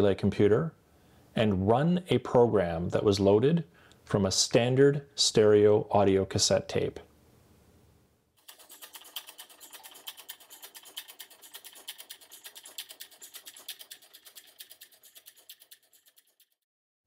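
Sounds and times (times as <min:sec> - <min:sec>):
rapid clatter of small clicks: 0:08.4 - 0:16.6.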